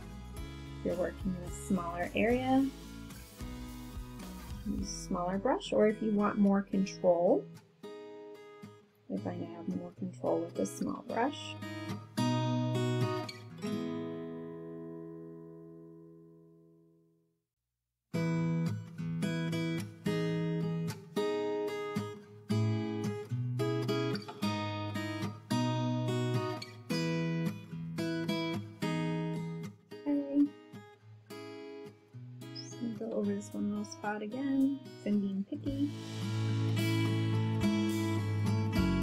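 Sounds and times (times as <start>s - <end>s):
acoustic guitar strumming: 0.0s - 16.3s, 18.2s - 39.0s.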